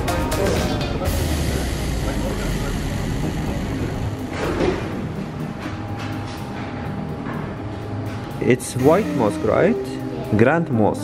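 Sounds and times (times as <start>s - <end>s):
background chatter: 0.0s - 5.1s.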